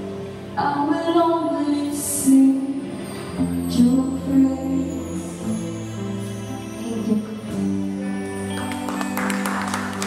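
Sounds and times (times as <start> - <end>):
audience clapping: 8.5 - 10.0.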